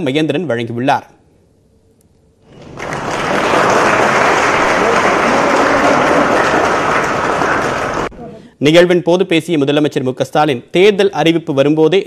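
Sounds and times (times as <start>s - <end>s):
crowd applauding: 2.5s - 8.1s.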